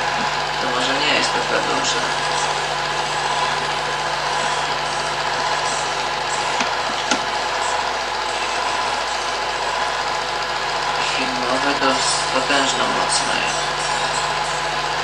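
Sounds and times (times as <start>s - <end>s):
film projector whirring: 0.0s - 15.0s.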